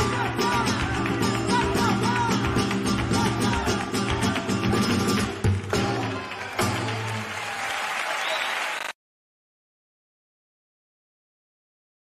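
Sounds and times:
flamenco music: 0:00.0 - 0:07.8
crowd applauding: 0:00.0 - 0:09.0.

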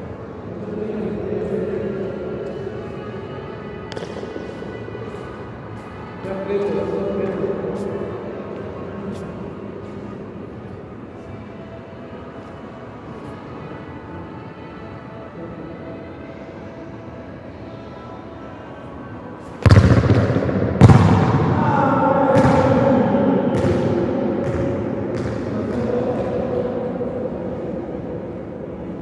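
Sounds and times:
faint music: 0:00.0 - 0:29.0
football kicked hard: 0:19.6 - 0:21.5.

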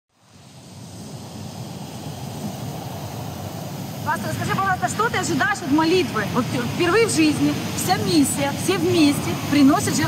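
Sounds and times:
sea surf rushing: 0:00.1 - 0:10.0
wind: 0:00.1 - 0:10.0.

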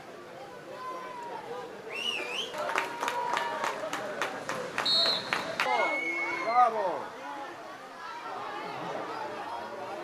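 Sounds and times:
faint voices: 0:00.0 - 0:10.0
scattered clapping: 0:02.5 - 0:05.8.

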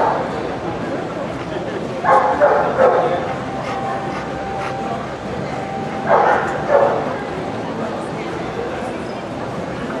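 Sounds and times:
crowd chatter in a hall: 0:00.0 - 0:10.0
dog barking: 0:02.0 - 0:03.2, 0:06.1 - 0:07.0.

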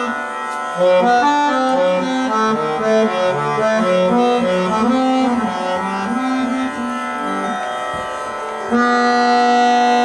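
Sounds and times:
harmonium chords: 0:00.0 - 0:10.0.

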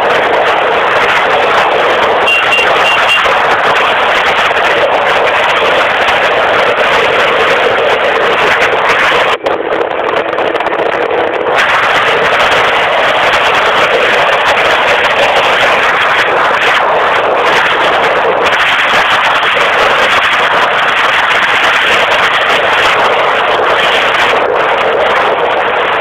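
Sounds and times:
scooter engine running: 0:00.0 - 0:26.0.

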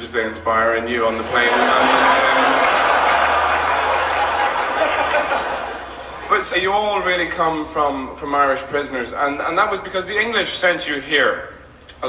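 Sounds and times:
theatre audience laughing: 0:01.1 - 0:06.5.

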